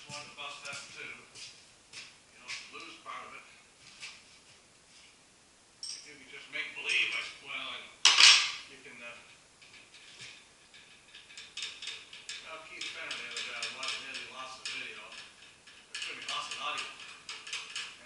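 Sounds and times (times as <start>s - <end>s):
milling machine clicking and rattling: 10.7s - 18.0s.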